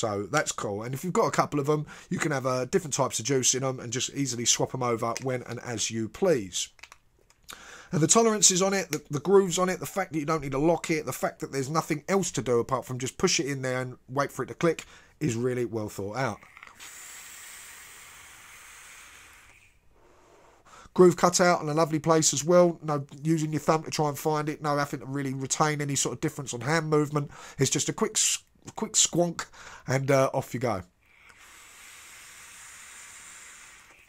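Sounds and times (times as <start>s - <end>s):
vape airy hiss: 16.6s - 20.7s, 31.1s - 34.0s.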